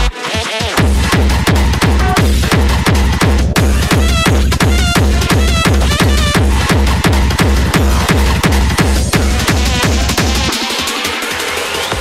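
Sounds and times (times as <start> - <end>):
fast kick drum beat: 0.0 - 12.0
hardcore electronic dance music: 0.0 - 12.0.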